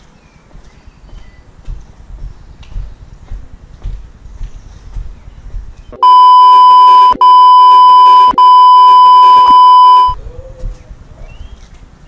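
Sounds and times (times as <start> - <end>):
censor beep tone: 6.0 - 10.2.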